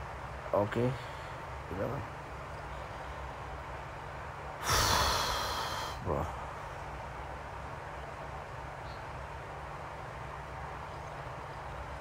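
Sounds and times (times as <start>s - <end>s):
man speaking: 6.0s - 6.4s.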